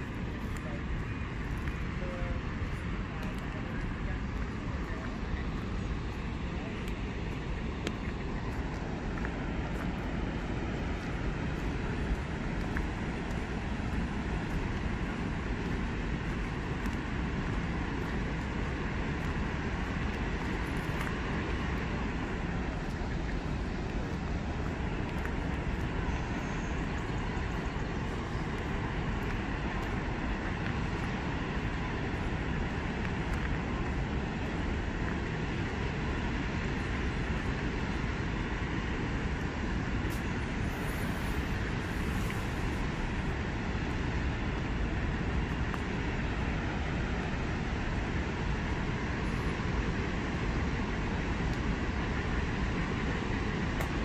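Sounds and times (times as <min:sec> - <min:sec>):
water roaring through dam gates: 0:00.0 - 0:54.0.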